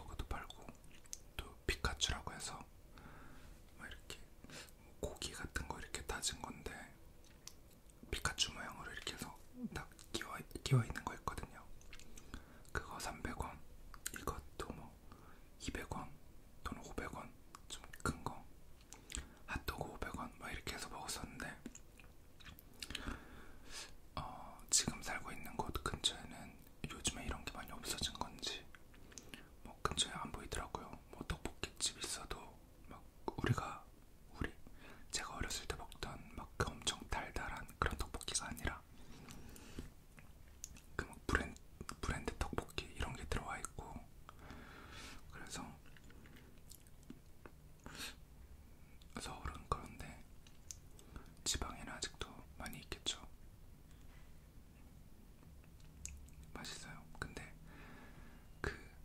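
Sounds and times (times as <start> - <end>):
person whispering: 0.0 - 2.7, 3.7 - 7.0, 8.0 - 18.5, 19.1 - 21.8, 23.8 - 39.7, 40.7 - 44.1, 45.1 - 46.2, 48.8 - 53.4, 56.0 - 57.6, 58.6 - 59.0
wet mouth clicks: 0.7 - 1.3, 11.7 - 12.3, 21.6 - 23.1, 39.3 - 41.0, 45.8 - 48.0, 50.4 - 51.4, 55.4 - 56.5.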